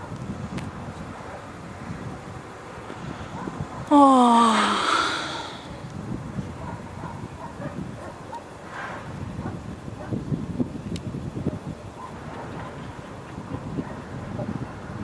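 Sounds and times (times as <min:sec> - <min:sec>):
wind buffeting microphone: 0:00.0 - 0:03.9, 0:04.6 - 0:15.0.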